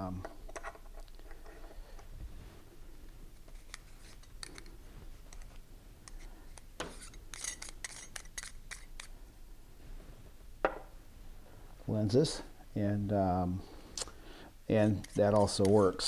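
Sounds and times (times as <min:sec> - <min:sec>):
camera lens clicks and scraping: 0:06.1 - 0:09.1.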